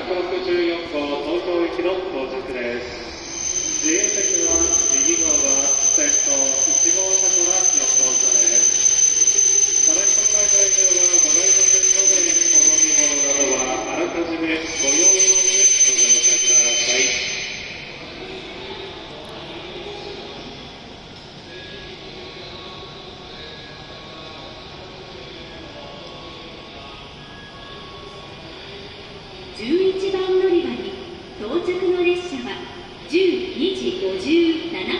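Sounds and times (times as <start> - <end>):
standing train hum: 0.0 - 27.3
train high whine: 0.0 - 34.9
train wheel squeal: 2.5 - 20.7.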